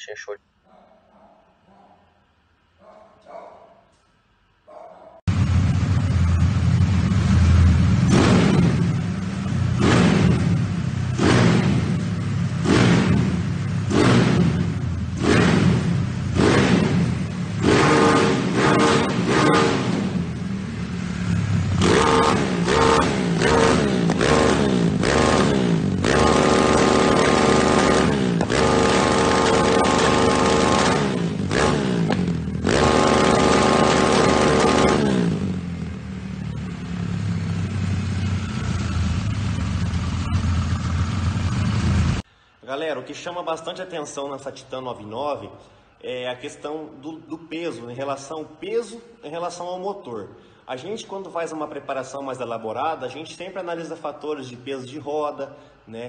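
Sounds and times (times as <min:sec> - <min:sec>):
motorcycle engine revving: 0:05.3 - 0:42.2.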